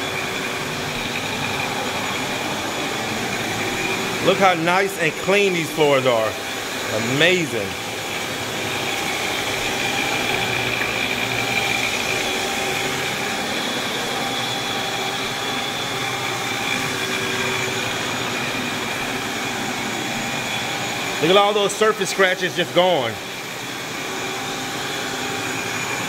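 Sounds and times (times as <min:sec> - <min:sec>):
floor scrubber motor drone: 0:00.0 - 0:26.0.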